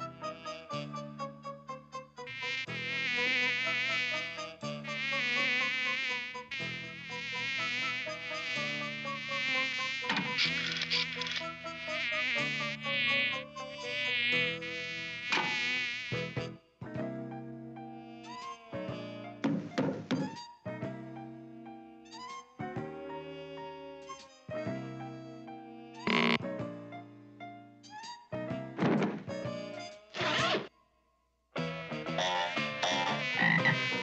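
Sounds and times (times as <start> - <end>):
cartoon fly buzzing: 2.3 - 16.4, 32.1 - 34.0.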